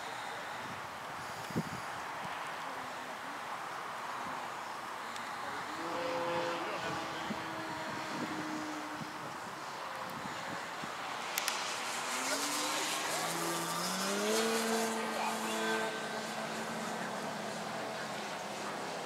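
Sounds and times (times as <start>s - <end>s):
model airplane motor: 5.7s - 10.5s, 11.2s - 19.0s.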